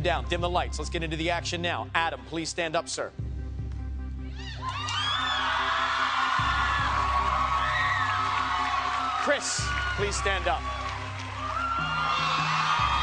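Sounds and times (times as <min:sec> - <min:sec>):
low dramatic music: 0:00.0 - 0:13.0
audience cheering and screaming: 0:04.3 - 0:13.0.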